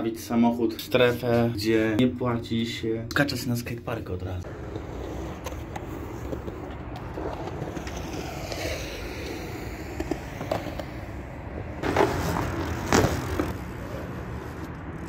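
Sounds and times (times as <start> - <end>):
wheels rolling on concrete: 4.4 - 15.0.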